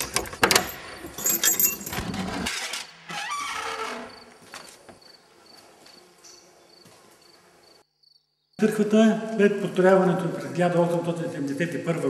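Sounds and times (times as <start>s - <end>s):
key rattling in iron lock: 0.0s - 2.0s
door creaking open: 0.0s - 4.8s.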